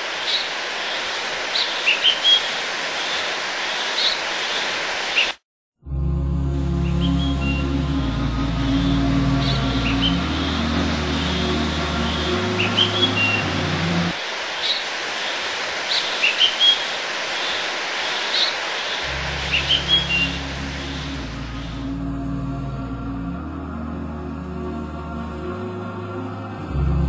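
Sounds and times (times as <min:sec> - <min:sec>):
steady hiss: 0:00.0 - 0:05.4, 0:08.0 - 0:22.1
low held music notes: 0:05.8 - 0:14.2.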